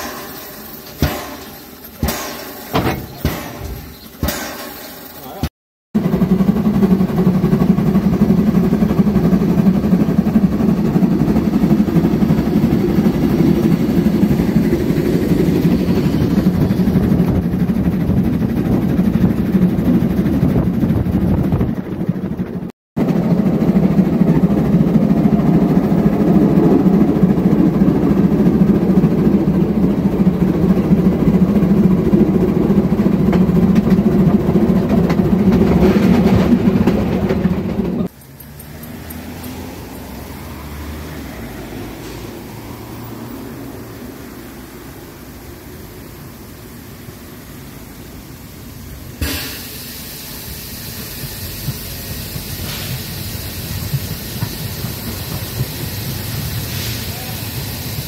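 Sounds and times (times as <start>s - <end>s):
steam train rumbling: 0.0s - 58.0s.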